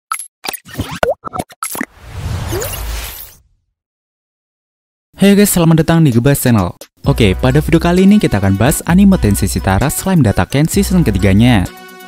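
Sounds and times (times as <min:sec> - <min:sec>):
cartoon pops and plops: 0:00.1 - 0:01.9.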